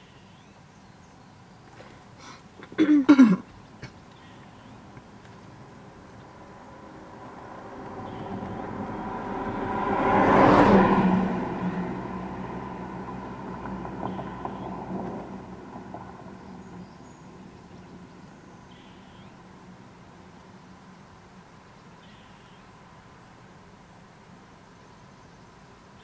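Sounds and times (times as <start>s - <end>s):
motor vehicle passing by: 4.2s - 20.5s.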